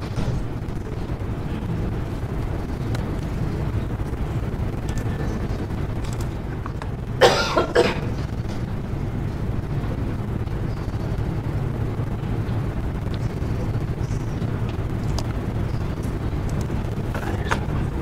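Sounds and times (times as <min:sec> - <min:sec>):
low room rumble: 0:00.0 - 0:18.0
person coughing: 0:07.2 - 0:08.2.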